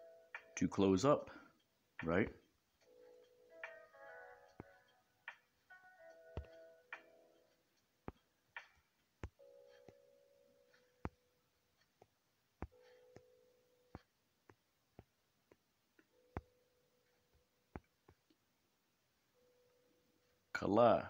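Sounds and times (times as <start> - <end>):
faint held tones: 1.3 - 14.3, 16.0 - 18.3, 19.2 - 20.6.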